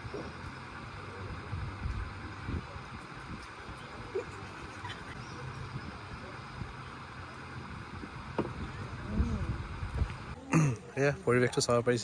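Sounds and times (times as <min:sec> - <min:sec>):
rushing background noise: 0:00.0 - 0:10.4.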